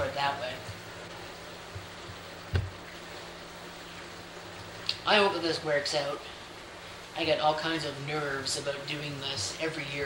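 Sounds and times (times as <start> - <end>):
appliance hum and hiss: 0.0 - 10.0.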